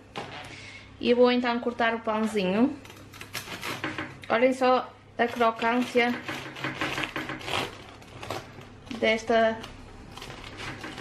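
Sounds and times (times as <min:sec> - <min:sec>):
bread knife sawing crusty loaf: 0:05.6 - 0:08.6.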